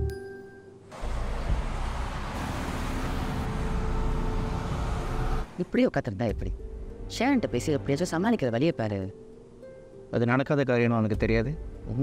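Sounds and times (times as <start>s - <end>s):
road traffic hiss and rumble: 0.9s - 6.7s.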